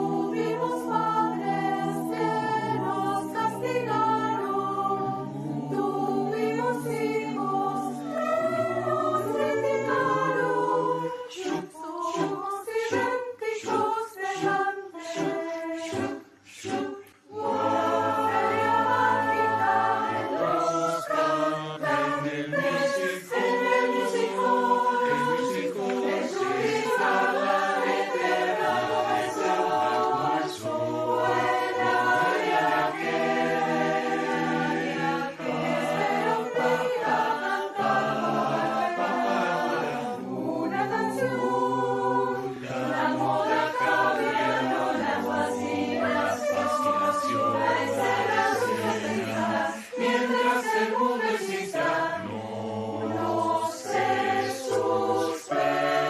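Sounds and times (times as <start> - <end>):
choir singing in harmony: 0.0 - 56.0.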